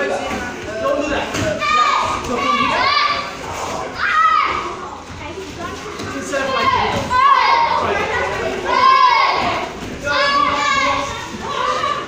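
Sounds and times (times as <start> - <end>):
hubbub of children: 0.0 - 12.0
children shouting: 1.4 - 4.8, 6.2 - 12.0.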